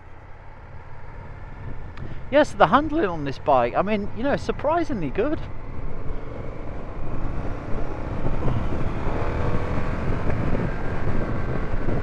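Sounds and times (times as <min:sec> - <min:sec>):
motorcycle engine accelerating: 0:05.4 - 0:12.0
wind rushing over microphone: 0:05.4 - 0:12.0.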